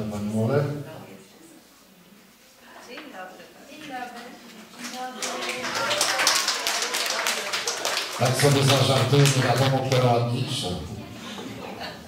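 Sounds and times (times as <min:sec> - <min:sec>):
audience clapping: 0:04.8 - 0:10.7.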